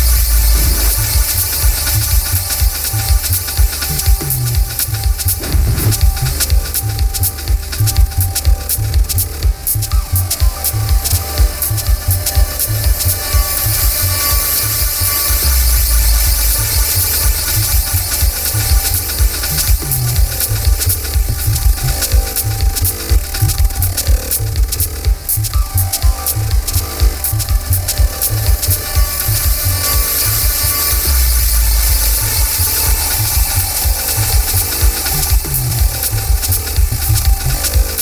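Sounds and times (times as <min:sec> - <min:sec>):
electronic techno music: 0:00.0 - 0:38.0.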